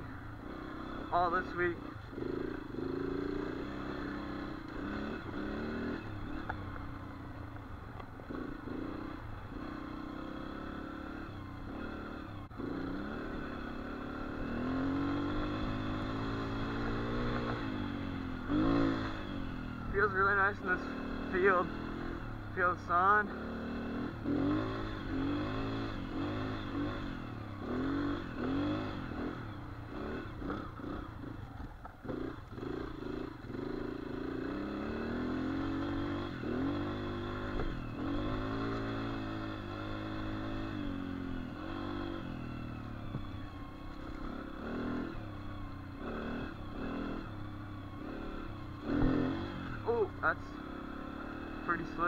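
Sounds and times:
dirt bike engine revving: 0.0s - 7.3s, 8.2s - 52.0s.

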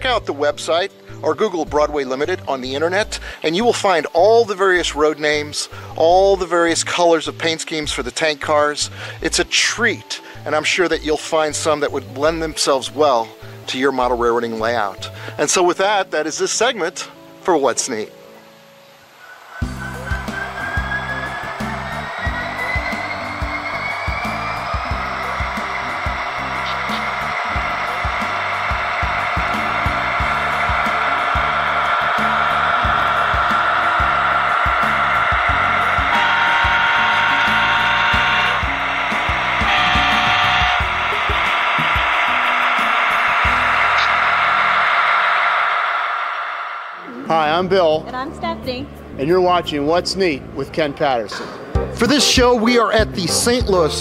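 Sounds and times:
locomotive whine: 19.0s - 49.2s
diesel engine rumble: 19.6s - 48.2s
train air horn: 19.9s - 45.2s.

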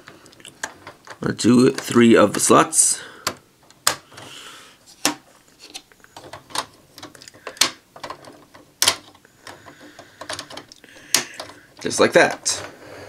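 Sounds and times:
plastic toy parts clicking: 6.2s - 12.5s.

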